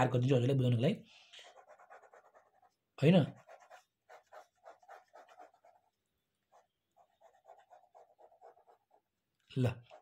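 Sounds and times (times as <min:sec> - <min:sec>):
pen scratching on paper: 0:01.4 - 0:10.0.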